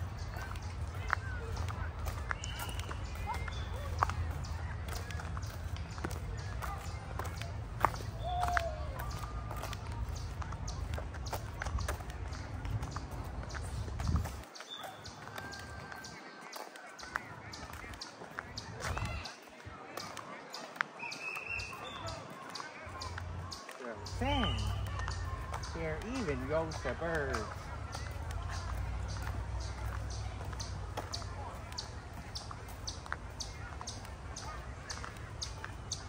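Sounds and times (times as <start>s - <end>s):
faint distant voices: 0.0s - 36.0s
footsteps running: 0.0s - 36.0s.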